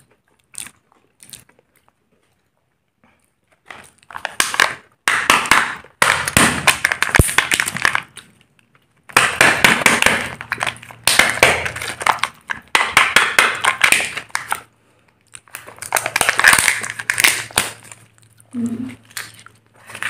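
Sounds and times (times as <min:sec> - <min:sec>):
plastic and foil crinkling: 0:03.5 - 0:20.0.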